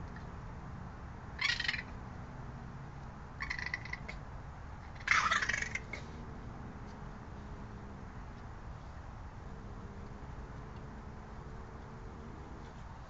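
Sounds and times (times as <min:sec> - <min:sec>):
raccoon chittering: 0:01.4 - 0:02.0, 0:03.4 - 0:04.2, 0:04.8 - 0:06.1.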